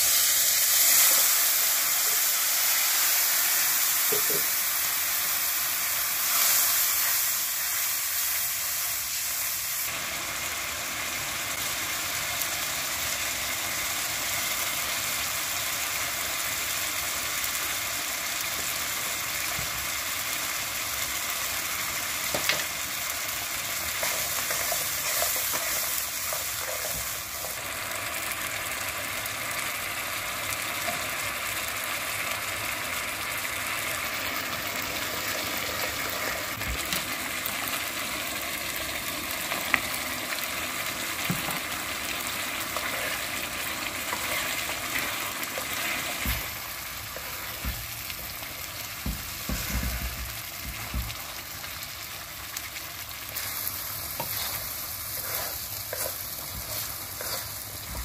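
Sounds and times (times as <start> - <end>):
food sizzling and bubbling in pan: 0.0 - 58.0
spatula stirring: 44.0 - 46.5, 53.3 - 58.0.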